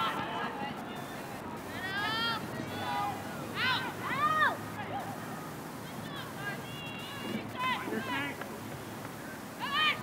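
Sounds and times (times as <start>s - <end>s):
low outdoor background: 0.0s - 10.0s
girls shouting: 1.9s - 4.7s.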